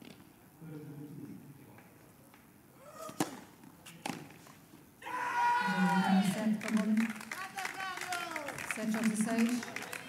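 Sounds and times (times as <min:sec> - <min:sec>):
racket hitting tennis ball: 0:03.0 - 0:04.3.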